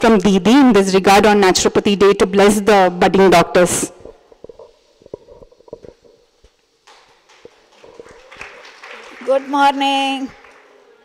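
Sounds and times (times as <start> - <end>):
microphone handling noise: 3.9 - 6.6.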